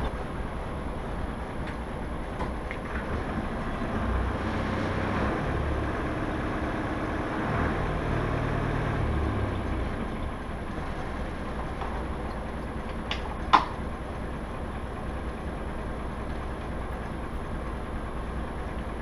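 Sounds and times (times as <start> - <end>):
engine rumbling: 0.0 - 19.0.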